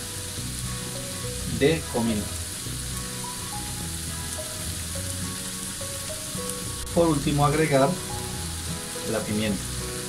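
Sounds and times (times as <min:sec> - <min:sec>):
background music: 0:00.0 - 0:10.0
onion and garlic sizzling in oil: 0:00.0 - 0:10.0.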